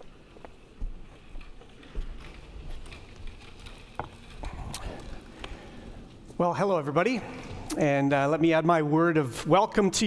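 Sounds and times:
footsteps climbing steps: 0.0 - 6.4.

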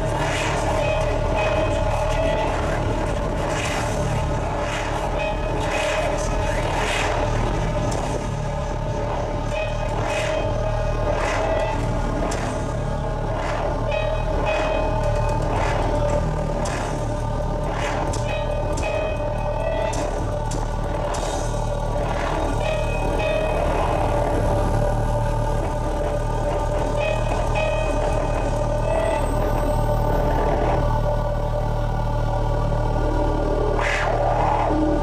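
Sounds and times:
droning electronic music: 0.0 - 35.0
low hum: 0.0 - 35.0.

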